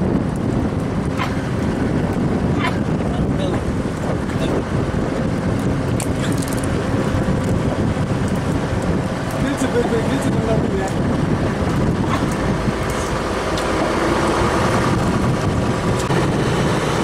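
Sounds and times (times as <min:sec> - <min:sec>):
boat engine rumbling: 0:00.0 - 0:17.0
wind on microphone: 0:00.0 - 0:17.0.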